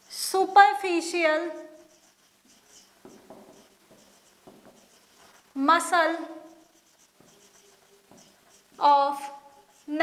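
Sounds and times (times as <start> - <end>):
woman speaking: 0.2 - 1.8, 5.6 - 6.6, 8.8 - 10.0
marker squeaking on whiteboard: 1.3 - 10.0.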